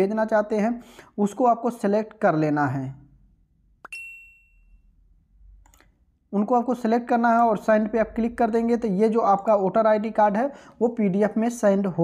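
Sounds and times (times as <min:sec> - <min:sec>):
high bell-like ding: 0:03.9 - 0:05.0.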